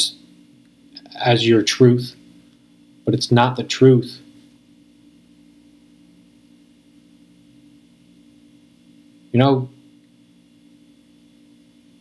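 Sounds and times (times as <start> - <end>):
faint low hum with hiss: 0.0 - 12.0.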